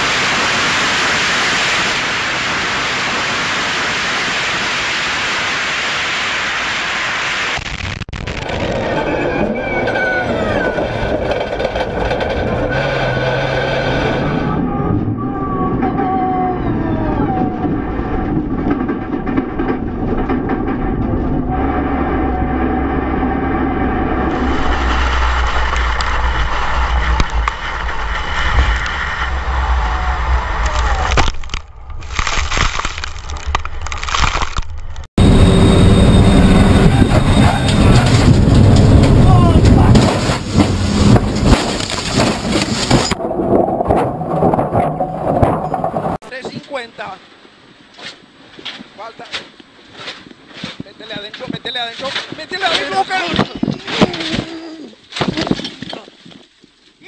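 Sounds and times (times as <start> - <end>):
race car engine at high revs: 8.4 - 14.8
sharp knocks and crashes: 17.6 - 21.5, 37.2 - 46.2, 48.0 - 56.8.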